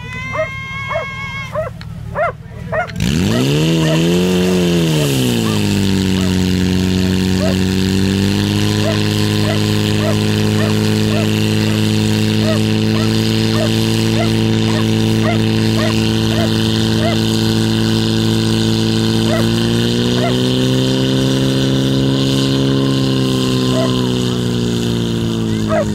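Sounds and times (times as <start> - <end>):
person shouting: 0.0 - 1.7
fire pump engine running: 0.0 - 25.9.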